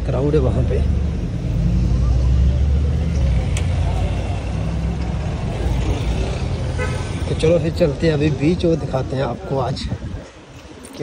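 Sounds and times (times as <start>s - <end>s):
car traffic rumble: 0.0s - 11.0s
faint voices: 0.0s - 11.0s.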